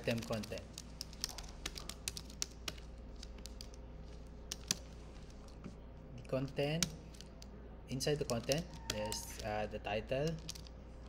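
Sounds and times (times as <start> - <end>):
typing on computer keyboard: 0.0 - 4.9, 8.1 - 10.7.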